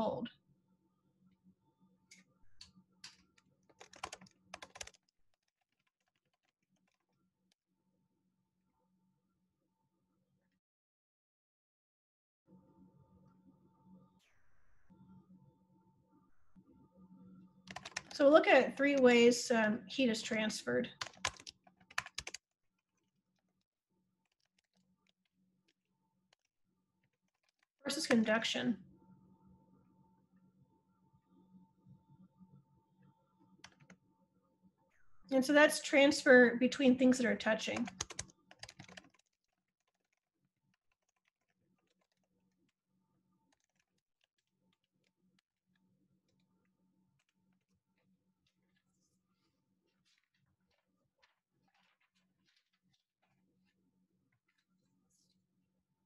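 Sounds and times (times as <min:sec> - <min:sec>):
keyboard typing clicks: 0:03.8 - 0:07.0, 0:17.7 - 0:18.2, 0:21.0 - 0:22.4, 0:33.6 - 0:34.0, 0:37.8 - 0:40.0.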